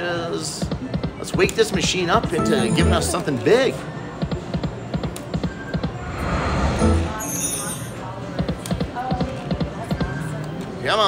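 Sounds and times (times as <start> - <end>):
electronic slot machine music: 2.3 - 3.3.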